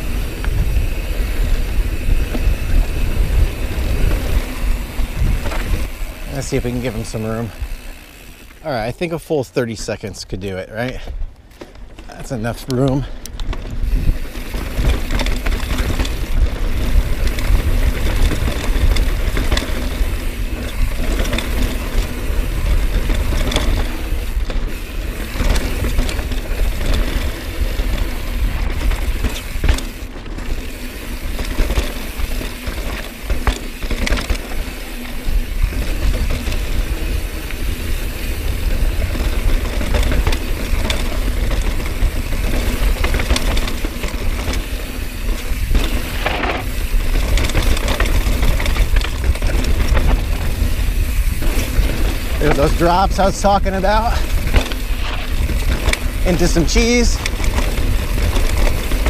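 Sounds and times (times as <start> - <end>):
wind buffeting microphone: 0.0 - 8.4, 10.9 - 59.0
bike clicking and rattling: 0.0 - 59.0
tyres rushing over dirt: 0.0 - 59.0.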